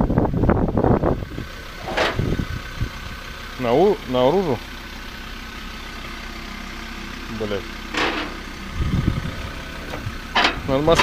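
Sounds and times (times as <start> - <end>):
pickup truck engine idling: 0.0 - 11.0.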